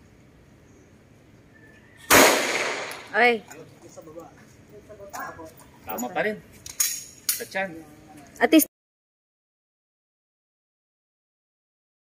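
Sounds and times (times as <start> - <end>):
handgun shot with echo: 2.1 - 3.1.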